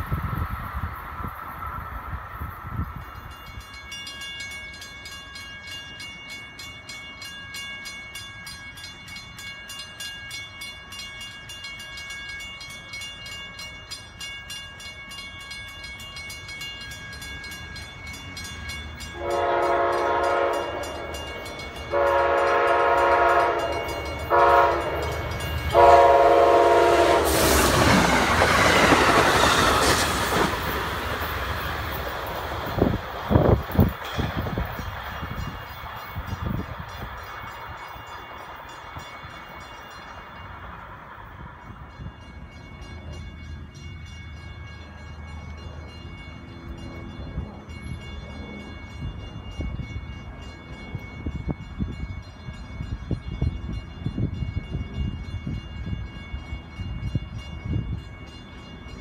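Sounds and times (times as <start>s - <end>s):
crossing bell ringing: 0.0s - 59.0s
train passing: 0.0s - 59.0s
train horn blasts: 19.1s - 27.7s.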